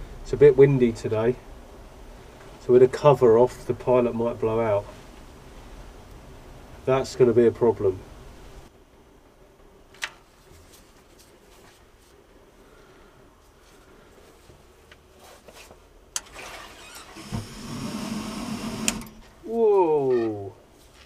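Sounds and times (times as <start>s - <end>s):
steady low flame burn: 0.0s - 16.2s
rising gas hiss: 16.6s - 19.7s.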